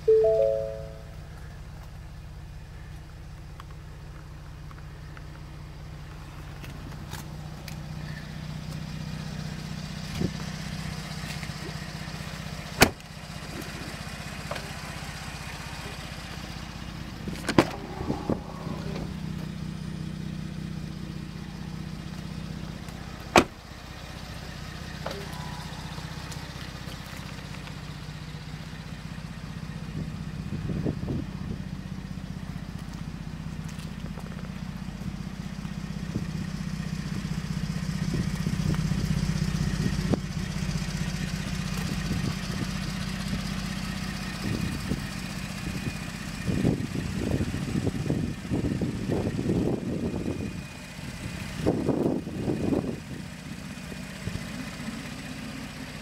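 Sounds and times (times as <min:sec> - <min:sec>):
truck engine idling: 0:00.0 - 0:56.0.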